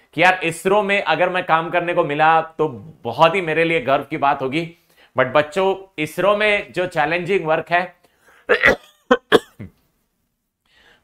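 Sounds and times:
man clearing his throat: 8.5s - 9.8s
man coughing: 8.5s - 9.8s.

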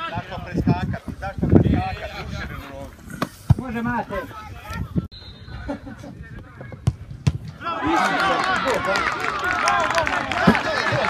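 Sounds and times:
players shouting: 7.5s - 11.0s.

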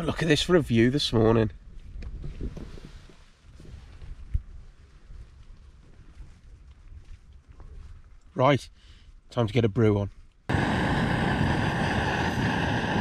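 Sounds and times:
wind rumbling on microphone and tent: 0.0s - 13.0s.

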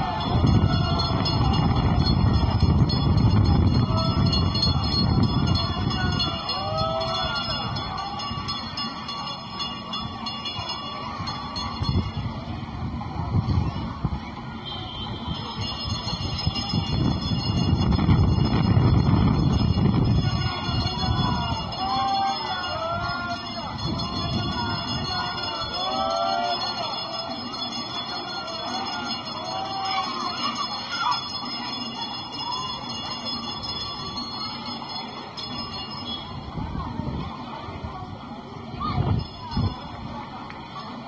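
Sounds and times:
wind buffeting microphone: 0.0s - 8.5s, 11.5s - 25.8s, 36.0s - 40.4s.

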